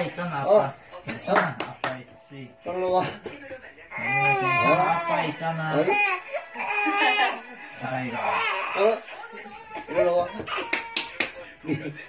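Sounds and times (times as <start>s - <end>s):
baby fussing: 3.9s - 7.4s, 8.1s - 9.0s.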